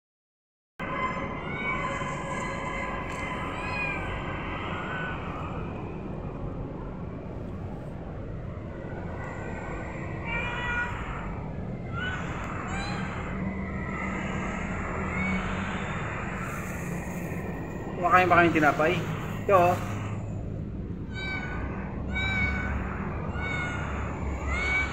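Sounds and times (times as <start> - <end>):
cat meows: 0.8 - 5.6, 9.2 - 20.3, 21.1 - 24.9
steady low hum: 0.8 - 24.9.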